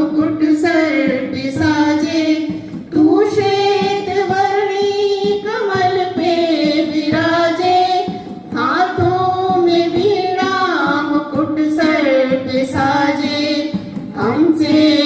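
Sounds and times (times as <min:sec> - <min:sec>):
boys singing together: 0:00.0 - 0:15.0.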